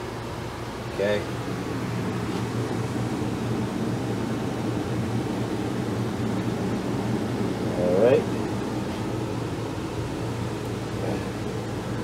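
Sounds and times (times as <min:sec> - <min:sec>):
ventilation unit humming: 0:00.0 - 0:12.0.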